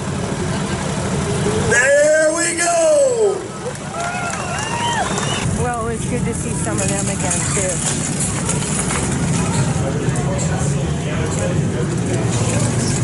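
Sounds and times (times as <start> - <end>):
motorcycle engines running: 0.0 - 13.0
people's voices: 0.1 - 13.0.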